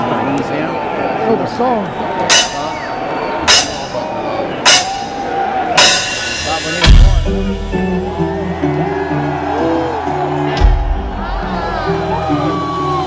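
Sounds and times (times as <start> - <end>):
murmuring crowd: 0.0 - 13.0
ringing metallic count-in strikes: 2.3 - 7.0.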